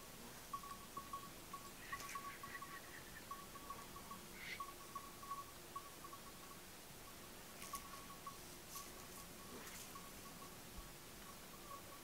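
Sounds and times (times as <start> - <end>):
livestock bells tinkling: 0.0 - 12.0.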